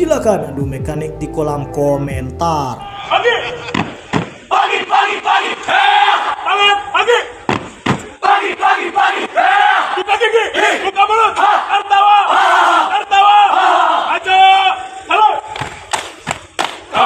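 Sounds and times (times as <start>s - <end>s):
men shouting chant in unison: 8.2s - 15.2s.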